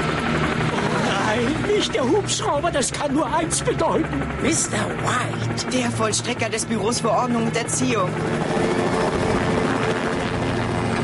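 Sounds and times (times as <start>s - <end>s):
helicopter rotor blades beating: 0.0s - 11.0s.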